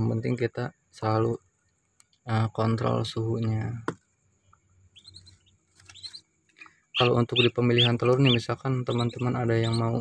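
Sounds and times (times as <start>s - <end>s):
ducklings peeping: 4.8s - 10.0s.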